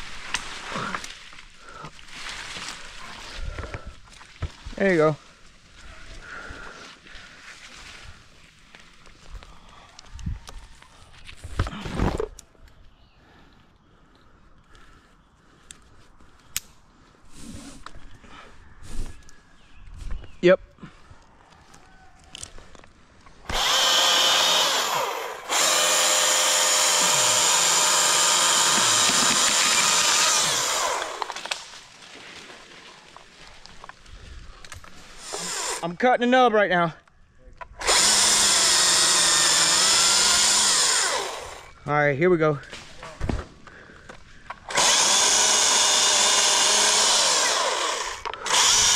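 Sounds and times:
chainsaw whining at full speed: 23.5s - 31.7s, 35.2s - 36.0s, 37.8s - 41.8s, 44.7s - 48.9s.

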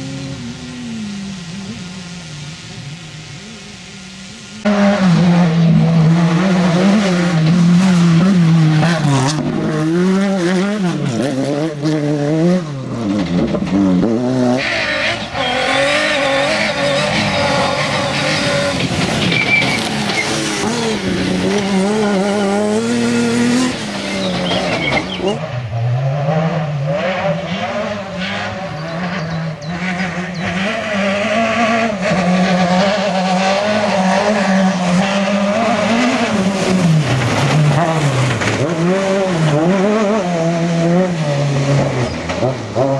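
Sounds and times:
rally car engine passing: 0.0s - 42.9s.

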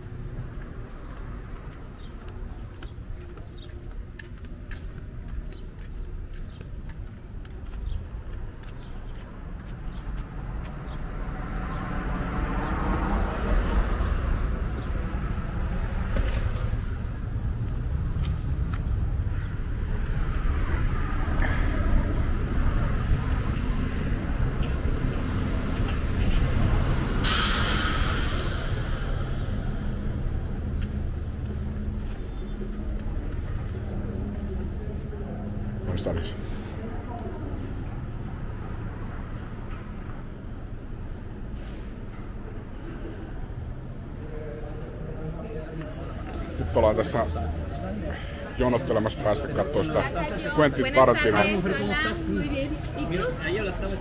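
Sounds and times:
low traffic rumble: 0.0s - 54.0s
motor vehicles passing: 0.0s - 54.0s
loud burst of hissing: 27.2s - 30.2s.

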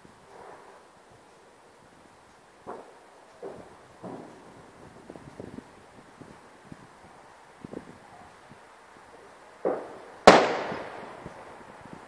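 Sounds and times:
fireworks bangs: 2.6s - 4.6s, 9.6s - 11.5s.

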